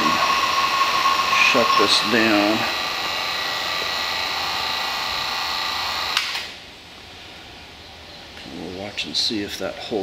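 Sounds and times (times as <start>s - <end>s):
vacuum pump running: 0.0s - 6.4s.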